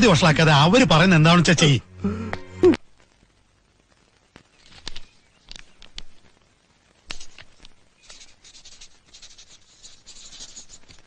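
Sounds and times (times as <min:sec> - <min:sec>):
pen scratching on paper: 0:08.0 - 0:11.0.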